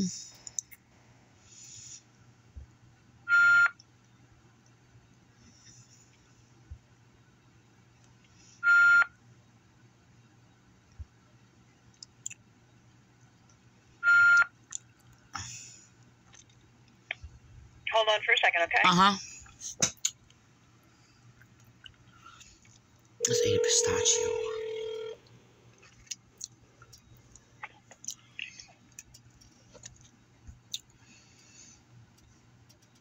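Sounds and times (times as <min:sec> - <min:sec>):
short telephone beep: 0:23.2 - 0:25.2
faint clicks: 0:32.1 - 0:33.0.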